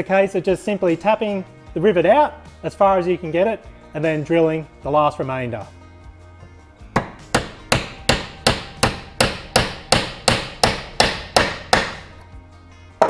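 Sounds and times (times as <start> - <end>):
hammer striking metal: 7.0 - 12.2.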